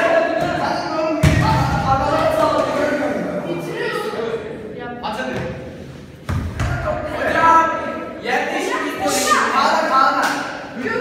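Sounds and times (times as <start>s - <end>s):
boys' voices: 0.0s - 11.0s.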